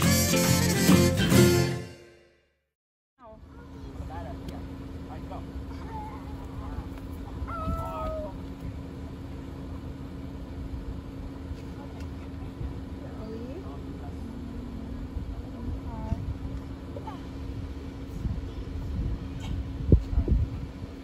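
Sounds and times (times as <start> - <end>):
faint voices calling out: 5.5 - 8.6
car engine idling: 8.3 - 18.8.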